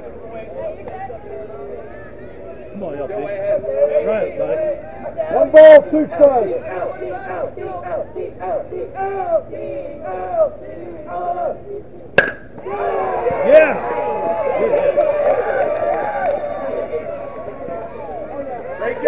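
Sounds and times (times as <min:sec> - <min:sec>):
crowd shouting and cheering: 0:00.0 - 0:19.0
people chanting and yelling: 0:00.0 - 0:19.0
baseball bat hitting ball: 0:12.2 - 0:12.7.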